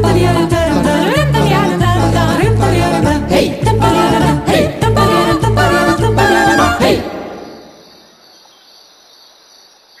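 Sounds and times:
crickets chirring: 7.2s - 10.0s.

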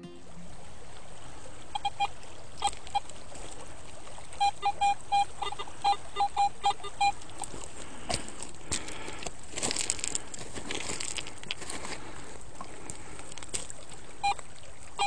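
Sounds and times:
metal detector beeps: 4.4s - 7.2s.

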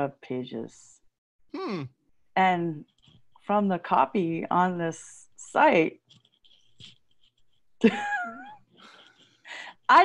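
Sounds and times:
woman laughing: 7.8s - 9.1s.

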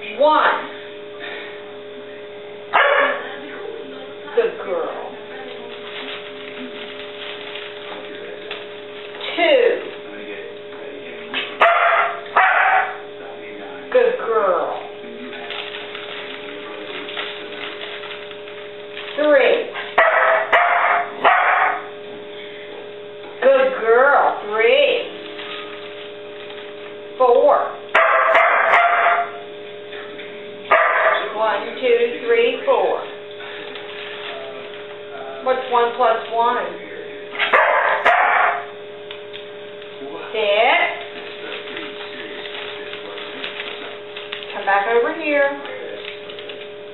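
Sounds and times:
dog yelping barks: 2.8s - 3.2s, 11.6s - 13.0s, 20.0s - 21.8s, 28.0s - 29.4s, 30.7s - 31.3s, 37.4s - 38.7s.

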